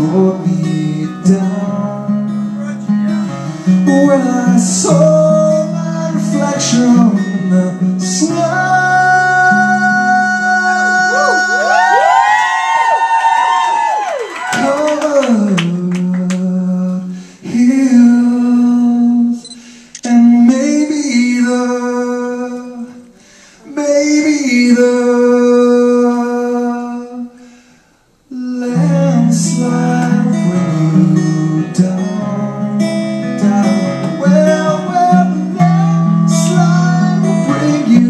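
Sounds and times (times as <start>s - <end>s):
man singing wordless notes: 0.0s - 11.9s, 14.6s - 19.4s, 20.0s - 27.4s, 28.3s - 38.0s
acoustic guitar: 0.0s - 12.5s, 13.8s - 38.0s.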